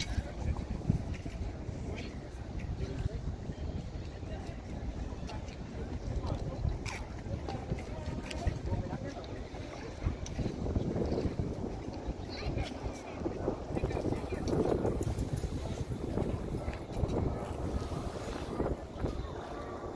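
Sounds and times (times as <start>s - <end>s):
indistinct background voices: 0.0s - 19.9s
wind buffeting microphone: 0.0s - 19.9s.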